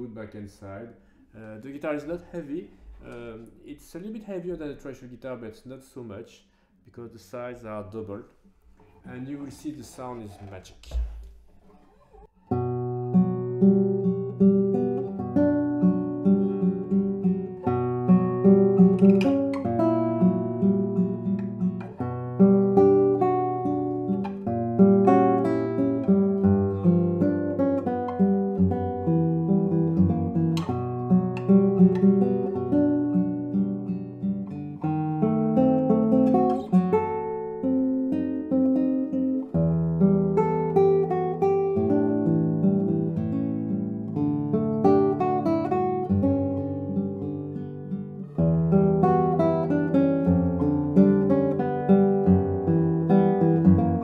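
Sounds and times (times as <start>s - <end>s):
classical guitar fingerstyle: 8.7s - 54.0s.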